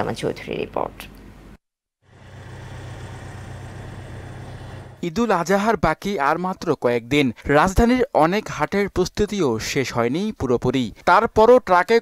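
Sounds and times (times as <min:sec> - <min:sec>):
outdoor background noise: 0:00.0 - 0:11.9
engine hum: 0:02.0 - 0:05.0.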